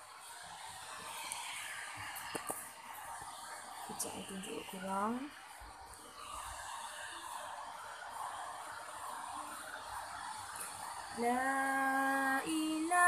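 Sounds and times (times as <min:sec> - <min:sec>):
white noise hiss: 0:00.0 - 0:13.0.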